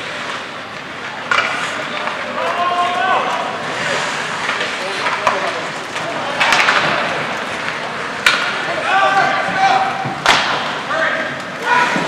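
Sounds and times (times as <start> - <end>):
ice hockey play noise: 0.0 - 12.0.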